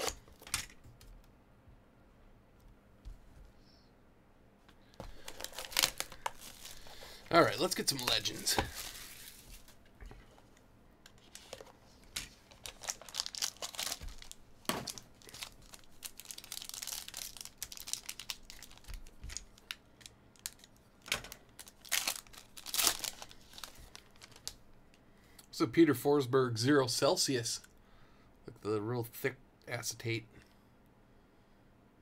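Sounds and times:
foil crinkling and tearing: 0:05.1 - 0:09.7, 0:12.4 - 0:20.7, 0:21.5 - 0:24.6.

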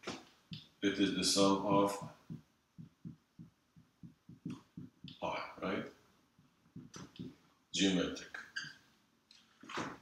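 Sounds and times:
marker thudding on whiteboard: 0:01.7 - 0:05.3, 0:06.4 - 0:07.4.

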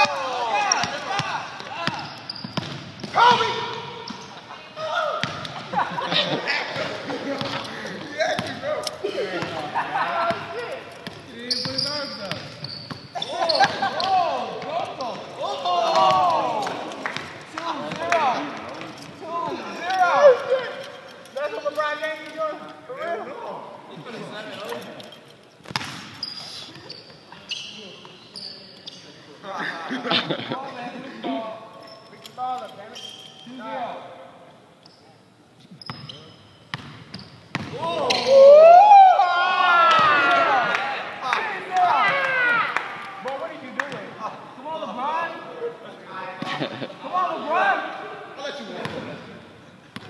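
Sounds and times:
people shouting and talking: 0:00.0 - 0:25.3, 0:37.7 - 0:49.5
basketball bouncing on hard court: 0:00.8 - 0:03.2, 0:05.2 - 0:05.5, 0:11.0 - 0:13.8, 0:25.7 - 0:26.2, 0:36.7 - 0:38.2.

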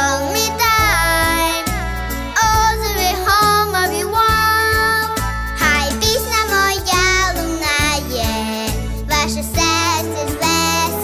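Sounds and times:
girl singing into microphone: 0:00.0 - 0:11.0
instrumental backing track: 0:00.0 - 0:11.0.

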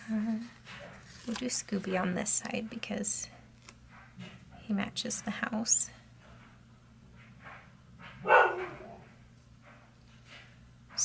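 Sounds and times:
dog barking: 0:08.1 - 0:09.1.

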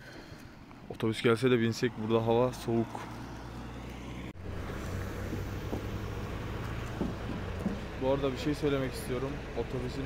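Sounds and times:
bus engine drone: 0:01.5 - 0:10.0.

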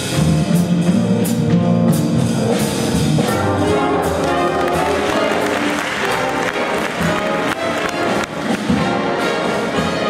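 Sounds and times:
drum kit: 0:00.0 - 0:10.0
piano: 0:00.0 - 0:10.0
upright double bass: 0:00.0 - 0:10.0.

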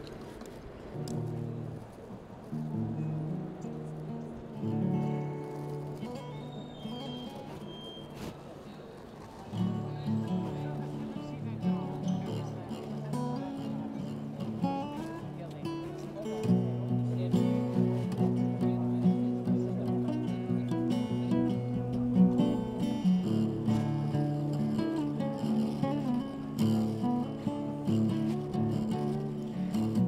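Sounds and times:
acoustic guitar plucked notes: 0:01.0 - 0:01.8, 0:02.5 - 0:08.0, 0:09.5 - 0:30.0.

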